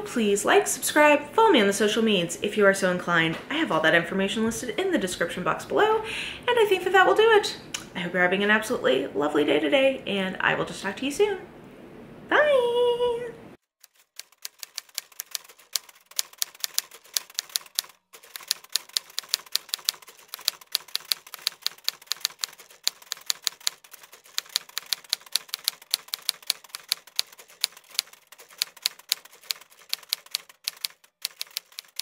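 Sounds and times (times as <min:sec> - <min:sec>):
rapid keystroke clicking: 0:13.8 - 0:32.0.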